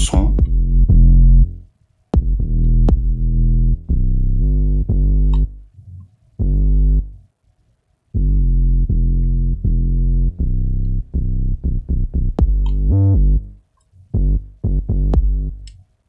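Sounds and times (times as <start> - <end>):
plucked synth bass line: 0.0 - 1.5, 2.2 - 5.7, 8.2 - 13.6, 14.2 - 15.7.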